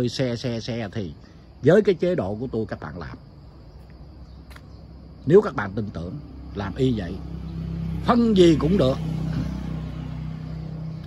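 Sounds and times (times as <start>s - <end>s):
low engine hum: 3.2s - 11.0s.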